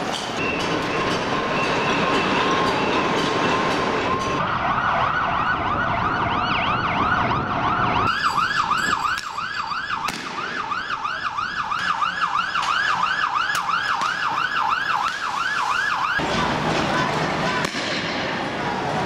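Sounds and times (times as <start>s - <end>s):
loud steady rushing noise: 0.0s - 11.0s, 12.9s - 19.0s
police siren: 0.4s - 16.4s.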